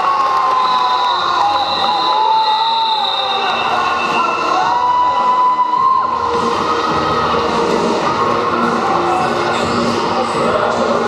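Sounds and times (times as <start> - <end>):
crowd noise in a sports hall: 0.0 - 11.0.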